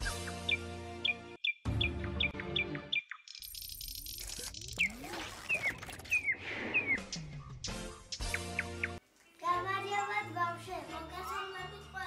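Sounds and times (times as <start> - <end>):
bird chirps: 0.0 - 9.0.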